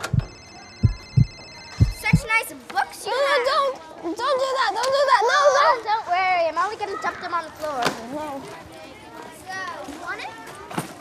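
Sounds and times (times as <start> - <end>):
high-pitched ringing tone: 0.0 - 2.2
heartbeat thumps: 0.0 - 2.3.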